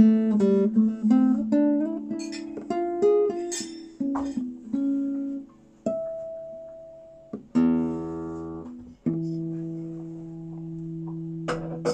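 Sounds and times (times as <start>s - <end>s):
guitar plucked notes ringing: 0.0s - 11.9s.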